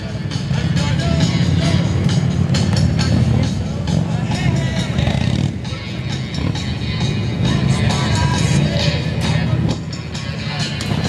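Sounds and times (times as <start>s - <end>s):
music from a loudspeaker: 0.0s - 11.0s
people talking: 7.5s - 11.0s.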